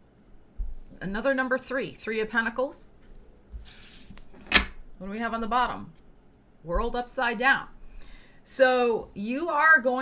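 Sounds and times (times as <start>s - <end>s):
card sliding rustle: 3.6s - 4.5s.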